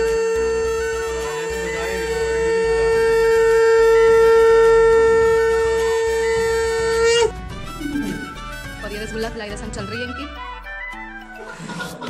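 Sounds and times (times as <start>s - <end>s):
conch shell blown: 0.0s - 8.8s.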